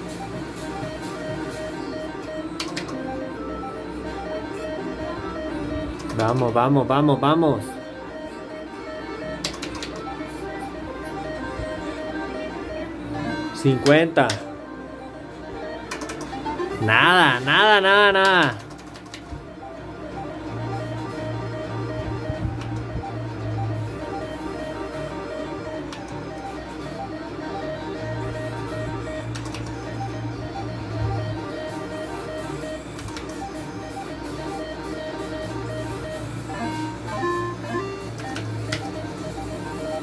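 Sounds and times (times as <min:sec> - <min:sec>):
slot machine game music: 0:00.0 - 0:40.0.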